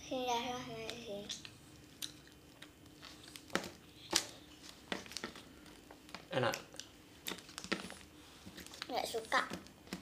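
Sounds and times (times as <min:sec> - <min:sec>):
chewing gum wrappers clicking: 0:01.3 - 0:03.5.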